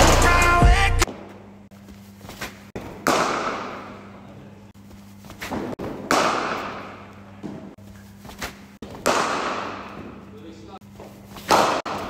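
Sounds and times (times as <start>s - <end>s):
bat striking cricket ball: 2.8s - 4.0s, 5.4s - 7.6s, 8.8s - 10.2s, 11.4s - 12.0s.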